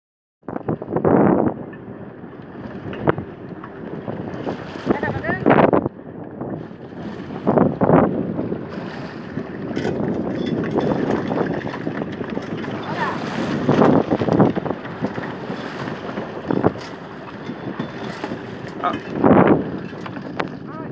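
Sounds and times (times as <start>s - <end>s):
boat noise: 0.4s - 20.9s
wind buffeting microphone: 0.4s - 20.9s
sea rushing: 0.5s - 20.9s.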